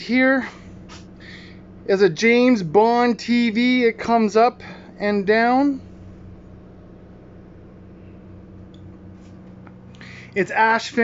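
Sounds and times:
generator humming: 0.0s - 11.0s.

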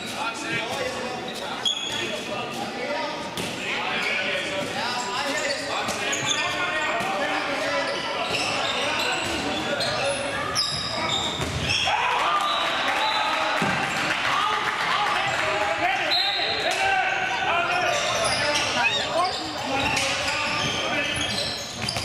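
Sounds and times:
shoes squeaking: 0.0s - 2.7s, 4.5s - 11.9s, 16.1s - 22.0s
players calling out: 8.3s - 22.0s
ball bouncing on court floor: 10.7s - 11.8s, 19.8s - 22.0s.

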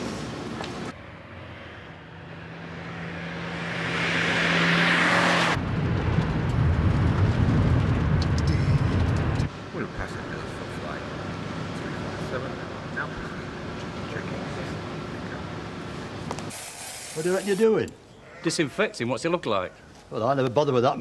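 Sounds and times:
terminal ambience: 9.5s - 16.3s.

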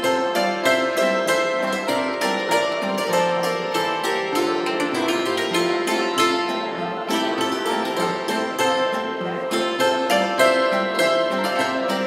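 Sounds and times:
zithers playing folk music: 0.0s - 12.0s.

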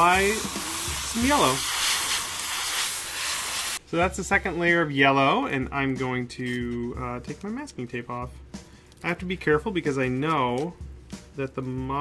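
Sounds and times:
airbrush spraying air hiss: 0.0s - 3.8s.

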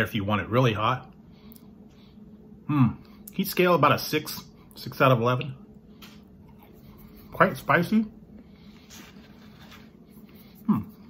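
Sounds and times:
faint chewing: 6.0s - 7.3s.

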